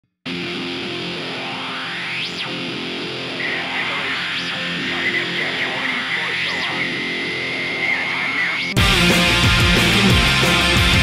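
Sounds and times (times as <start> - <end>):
rock music with distorted guitar: 0.3 - 11.0.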